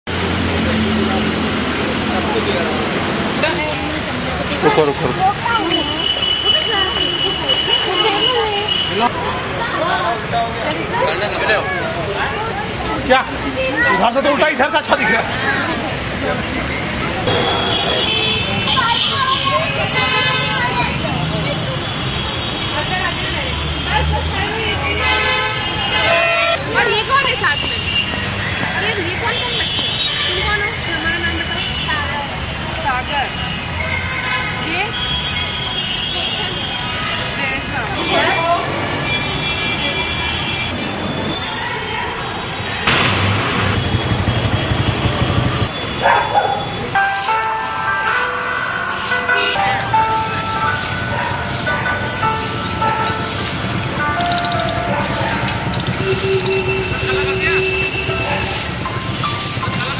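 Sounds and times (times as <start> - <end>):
indistinct voices: 0.1 - 34.0, 46.6 - 59.9
vehicle horns honking: 4.8 - 9.2, 17.2 - 32.2, 33.2 - 37.4, 38.0 - 41.6, 42.8 - 59.9.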